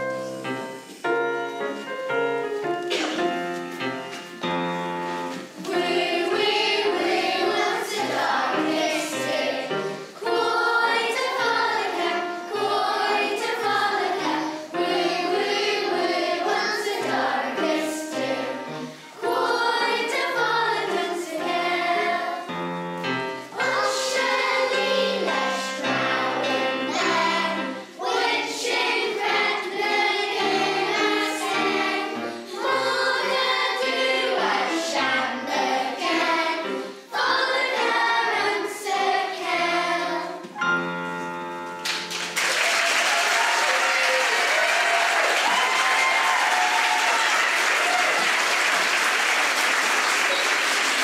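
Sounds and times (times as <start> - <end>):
children's choir singing: 0.0 - 41.7, 43.4 - 51.0.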